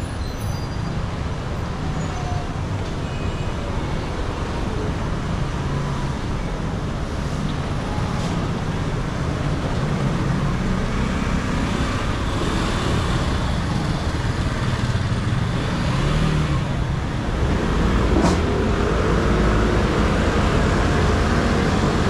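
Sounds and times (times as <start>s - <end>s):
scooters and cars passing: 1.0s - 22.0s.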